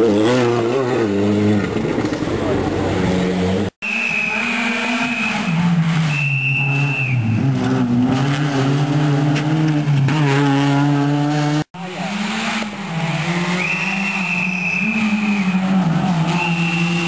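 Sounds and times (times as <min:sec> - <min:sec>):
rally car engine at high revs: 0:00.0 - 0:17.0.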